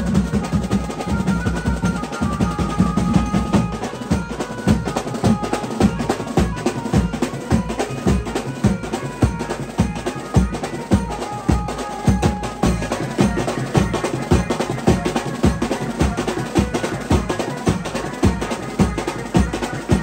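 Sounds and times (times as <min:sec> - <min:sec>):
drums beaten with sticks: 0:00.0 - 0:20.0.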